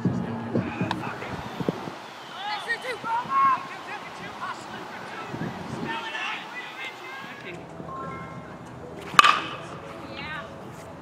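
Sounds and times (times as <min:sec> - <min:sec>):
baseball bat hitting ball: 0:00.7 - 0:08.4, 0:09.0 - 0:10.0.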